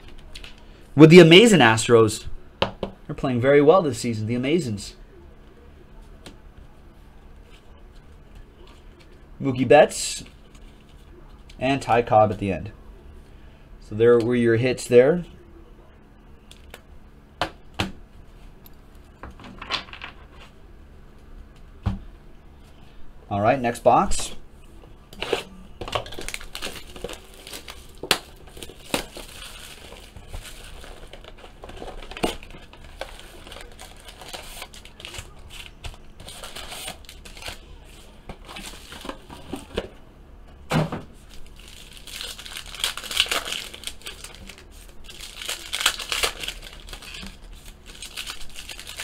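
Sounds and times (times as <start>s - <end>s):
plastic wrap crinkling and tearing: 25.2s - 39.8s, 41.2s - 49.0s.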